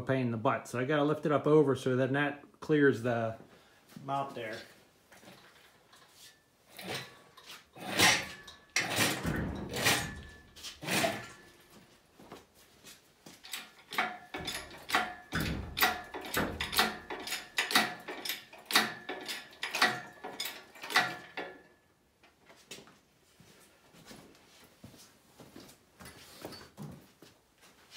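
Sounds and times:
metal clanks from engine hoist: 6.8s - 11.6s, 13.4s - 21.7s
hoist chain clicking: 7.8s - 11.5s, 13.4s - 21.7s.

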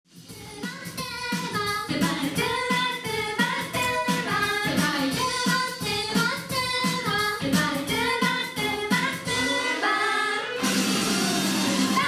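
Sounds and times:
pop backing track: 0.1s - 12.0s
kick drum beat: 0.3s - 9.3s
young women singing together: 0.4s - 10.6s.

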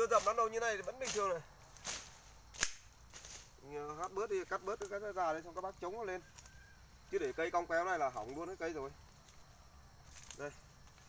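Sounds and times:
sharp snap of stem cut: 1.0s - 3.4s.

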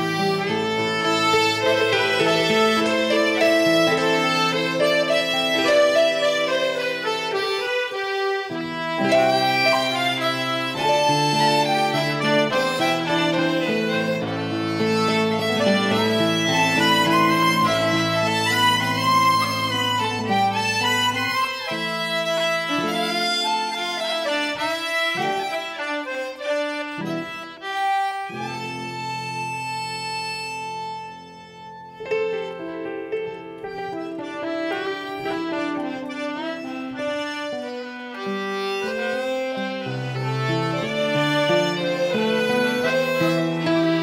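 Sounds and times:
concertina tune: 0.0s - 44.0s
fiddle: 0.0s - 44.0s
guitar: 0.0s - 44.0s.

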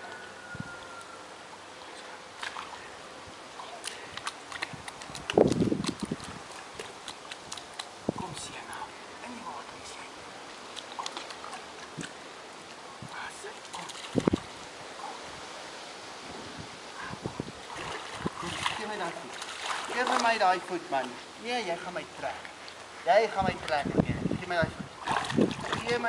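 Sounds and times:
pool water splashing: 0.0s - 8.2s, 10.2s - 15.7s, 17.6s - 26.0s.

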